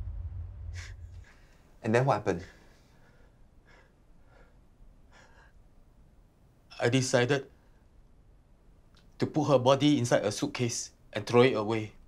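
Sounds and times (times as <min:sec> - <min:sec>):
faint breaths: 0:00.8 - 0:05.9.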